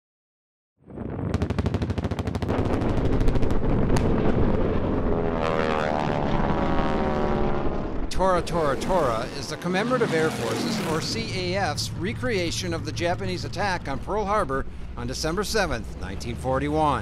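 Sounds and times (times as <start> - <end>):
heavy rumble of a blast: 0.9 - 17.0
rapid sharp cracks: 1.4 - 4.8
low-passing aircraft engine: 4.2 - 17.0.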